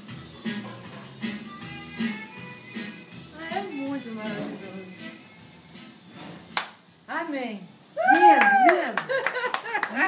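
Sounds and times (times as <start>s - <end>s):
faint music: 0.0s - 10.0s
sharp hand clap: 6.6s - 6.8s, 8.1s - 10.0s.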